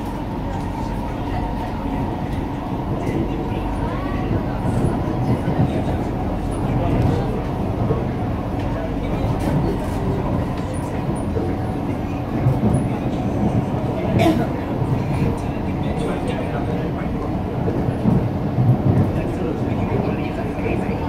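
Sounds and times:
train rumbling inside carriage: 0.0 - 21.0.

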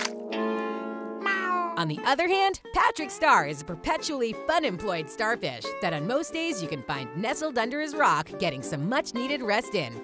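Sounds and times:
cartoon music with held chord: 0.0 - 10.0.

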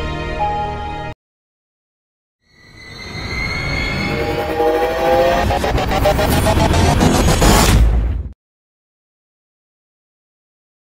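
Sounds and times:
rising horn-like chord: 3.9 - 6.2.

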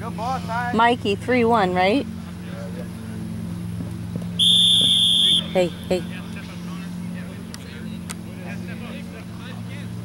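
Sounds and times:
referee whistle blast: 4.4 - 5.8.

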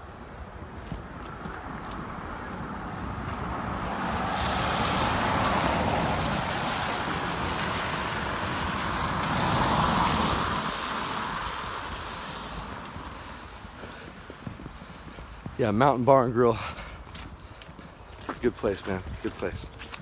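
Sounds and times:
cars passing on wet road: 0.0 - 20.0.

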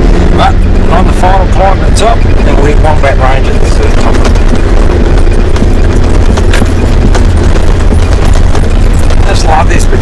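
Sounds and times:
off-road vehicle engine rumble: 0.0 - 10.0.

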